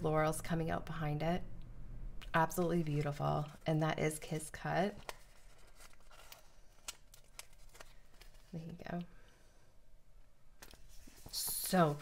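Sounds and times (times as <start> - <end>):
paper sticker sheet rustling: 2.8 - 8.8, 10.6 - 12.0.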